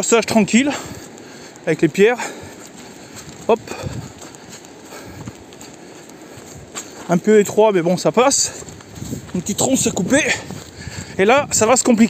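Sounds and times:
footsteps on wet leafy dirt: 0.0s - 12.0s
steady hiss: 0.0s - 12.0s.

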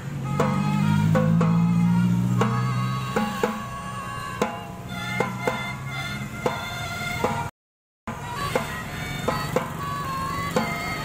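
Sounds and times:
drum strokes: 0.0s - 7.5s, 8.1s - 11.0s
melodicas playing melody: 0.0s - 7.5s, 8.1s - 11.0s.

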